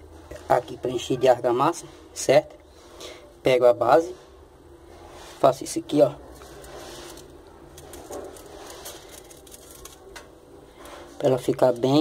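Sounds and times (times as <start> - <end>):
light scraping of metal frame: 4.1 - 10.1.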